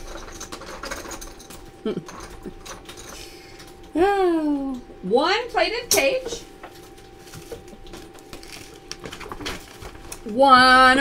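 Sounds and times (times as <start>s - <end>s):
faint steady hum: 0.0s - 11.0s
paper or plastic rustling: 6.8s - 10.3s.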